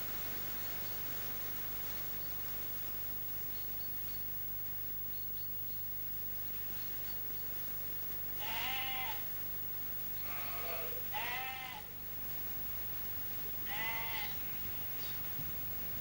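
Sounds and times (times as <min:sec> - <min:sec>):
sheep bleating: 0:08.4 - 0:09.3, 0:10.2 - 0:12.0, 0:13.6 - 0:14.4.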